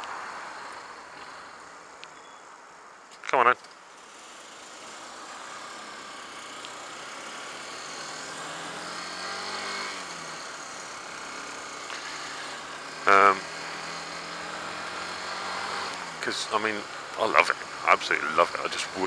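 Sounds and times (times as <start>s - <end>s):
motorcycle engine: 3.8s - 19.0s
rider vocal sound: 12.0s - 13.4s, 16.1s - 19.0s.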